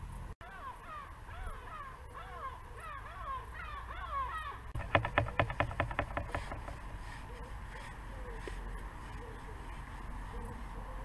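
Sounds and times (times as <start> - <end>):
birds calling harshly: 0.4 - 11.0
fast run of loud clicks: 4.8 - 7.0.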